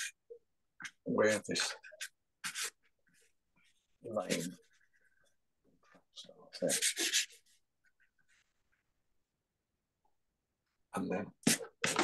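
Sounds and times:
pastel scratching on paper: 1.3 - 5.0, 6.6 - 8.5, 11.4 - 12.0
light rubbing on paper: 1.3 - 5.2, 6.6 - 8.8.

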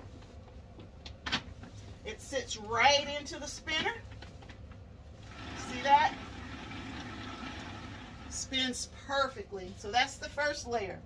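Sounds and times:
woman speaking: 2.1 - 4.1, 5.5 - 6.3, 8.3 - 11.0.

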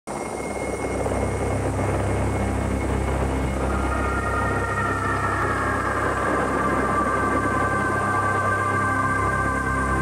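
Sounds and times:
helicopter engine and rotor drone: 0.1 - 10.0.

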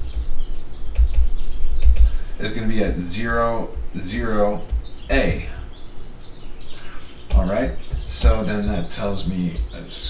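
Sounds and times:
stylus ticking on tablet screen: 0.0 - 2.2
low handling thumps: 0.0 - 10.0.

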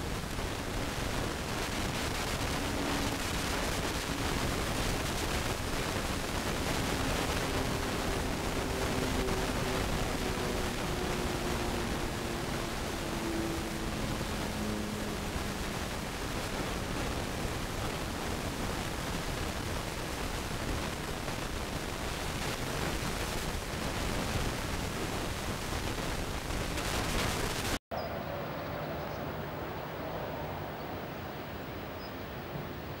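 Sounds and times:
steady hiss: 0.0 - 27.8.

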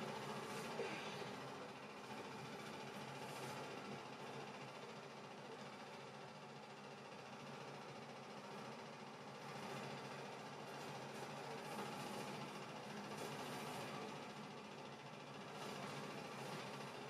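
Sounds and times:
light hum: 0.0 - 4.6.

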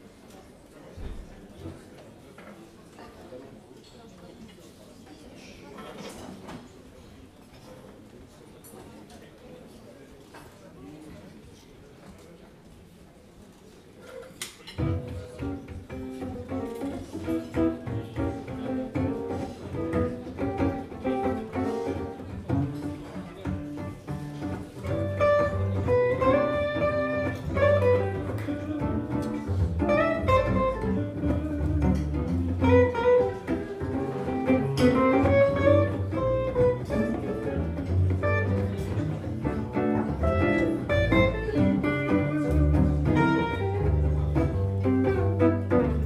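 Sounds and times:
electric guitars playing jazz: 14.8 - 46.0
plucked double bass: 14.8 - 46.0.

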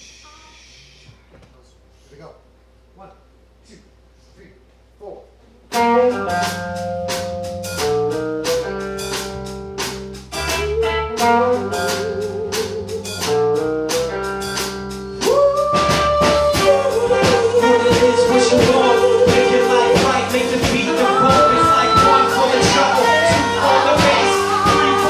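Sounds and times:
bass guitar: 5.3 - 25.0
electric guitar: 5.7 - 25.0
drum kit beat: 5.8 - 25.0
horns playing: 15.8 - 25.0.

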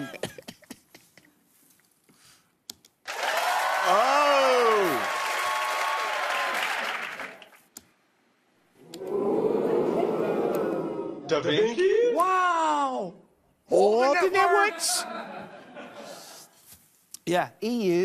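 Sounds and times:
crowd reaction sound effect: 3.1 - 7.4, 8.8 - 11.6.

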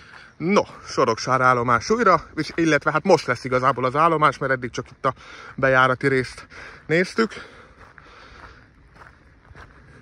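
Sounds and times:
faint footsteps: 0.0 - 10.0
low outdoor background noise: 0.0 - 10.0.

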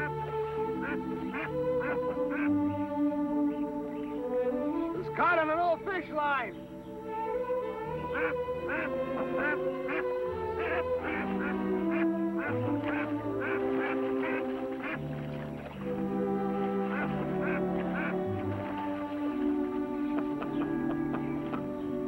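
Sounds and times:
goose honking: 0.0 - 2.8, 7.3 - 22.0
music with long held notes: 0.0 - 22.0.

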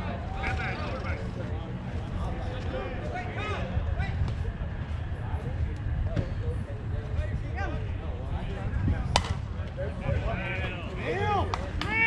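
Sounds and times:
bat striking softball: 9.1 - 9.4.

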